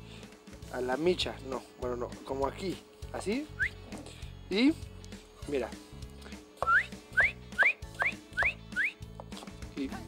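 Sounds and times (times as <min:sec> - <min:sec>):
background music: 0:00.0 - 0:10.0
short rising whistles: 0:03.5 - 0:03.9, 0:06.6 - 0:09.1.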